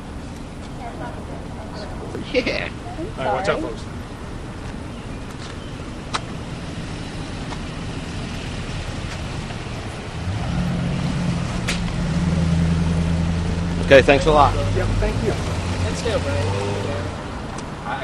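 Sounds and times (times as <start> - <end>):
faint street noise: 0.0 - 18.0
vehicle engine hum: 0.0 - 18.0.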